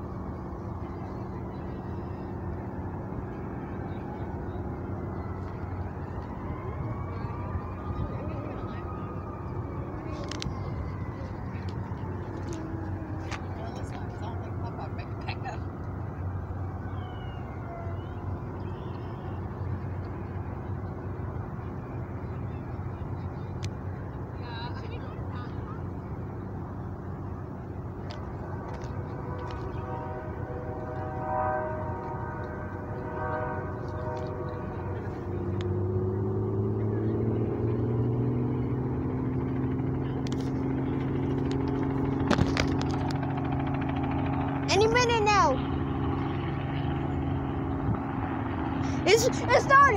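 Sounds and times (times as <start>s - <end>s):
outdoor background noise: 0.0s - 49.9s
helicopter engine starting up: 38.8s - 49.9s.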